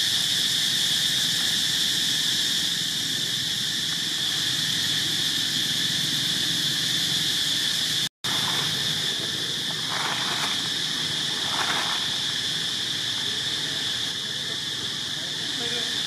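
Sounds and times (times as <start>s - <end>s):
high-pitched insect chorus: 0.0s - 16.0s.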